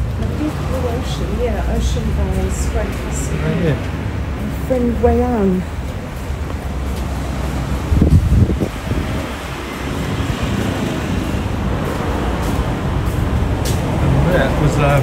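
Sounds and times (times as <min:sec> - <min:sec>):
street traffic rumble: 0:00.0 - 0:15.0.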